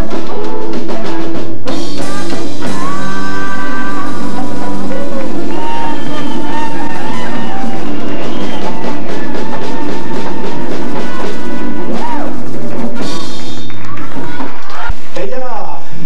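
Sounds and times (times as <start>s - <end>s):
hand drums and congas: 0.0s - 14.8s
latin band playing: 0.0s - 15.1s
bass line: 0.0s - 15.3s.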